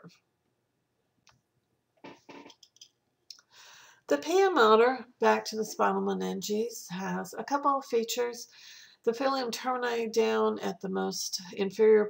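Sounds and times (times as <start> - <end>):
small clicks: 2.0 - 3.4
soft inhaled breath: 3.5 - 4.1, 8.5 - 9.0.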